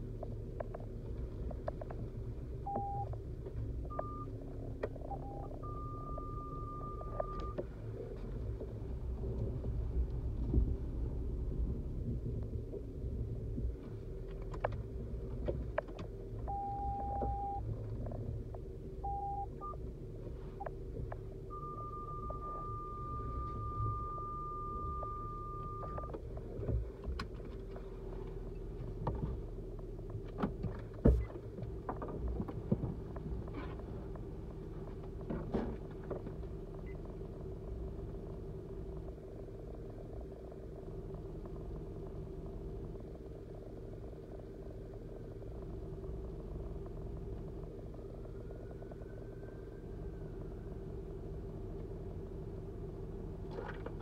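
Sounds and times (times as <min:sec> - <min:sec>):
car engine and road rumble: 0:00.0 - 0:54.0
electronic beeps: 0:02.7 - 0:03.2, 0:03.9 - 0:04.3, 0:05.0 - 0:07.6, 0:16.5 - 0:17.6, 0:19.0 - 0:19.8, 0:21.5 - 0:26.1.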